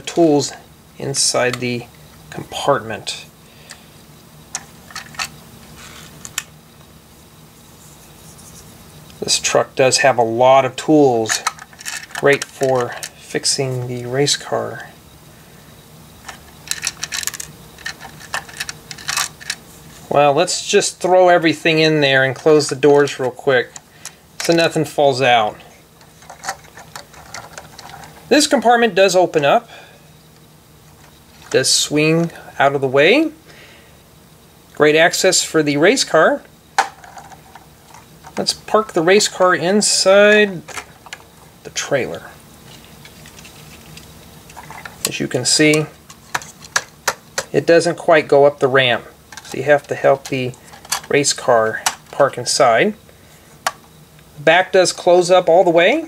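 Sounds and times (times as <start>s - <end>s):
low steady hum: 0.0s - 56.0s
plastic pieces clicking: 11.3s - 13.1s, 16.2s - 19.6s, 50.2s - 51.1s
plastic toy bricks clicking: 16.7s - 19.6s.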